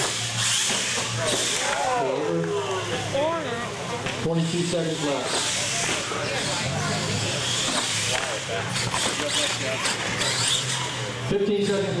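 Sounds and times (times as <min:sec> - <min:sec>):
electric motor whining: 0:04.8 - 0:11.9.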